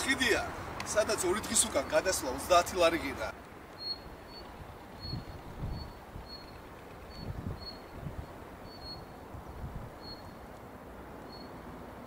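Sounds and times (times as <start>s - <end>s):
small bird chirping: 3.8s - 10.4s, 11.2s - 11.6s
wind buffeting microphone: 3.8s - 10.4s.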